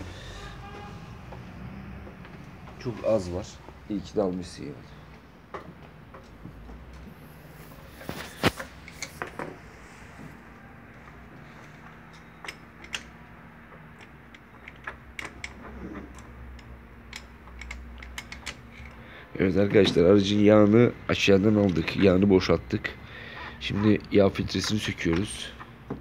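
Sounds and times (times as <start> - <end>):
hand tools clicking and clinking: 11.6 - 19.0.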